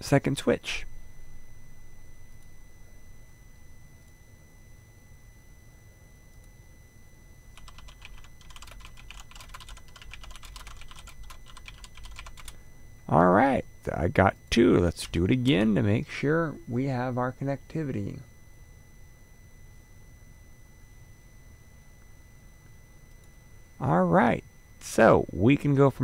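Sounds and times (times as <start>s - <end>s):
computer keyboard typing: 7.6s - 12.6s.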